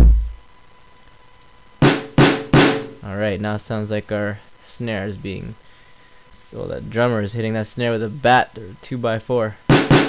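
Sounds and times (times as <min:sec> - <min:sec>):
punchy snare drum hits: 0:00.0 - 0:00.4, 0:01.8 - 0:03.0, 0:09.7 - 0:10.0.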